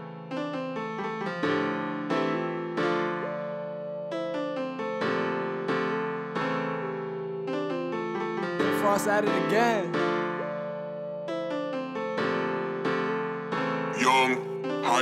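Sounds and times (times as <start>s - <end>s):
keyboard melody: 0.0s - 15.0s
pitch-bent voice tag: 14.0s - 15.0s.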